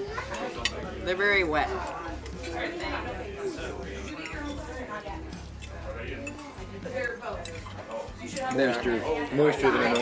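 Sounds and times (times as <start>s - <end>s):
soft background music: 0.0s - 10.0s
forks clinking on plates: 4.0s - 10.0s.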